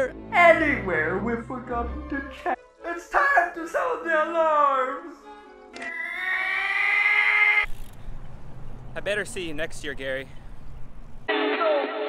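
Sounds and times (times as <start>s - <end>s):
long pitched alarm wail: 5.8s - 7.7s.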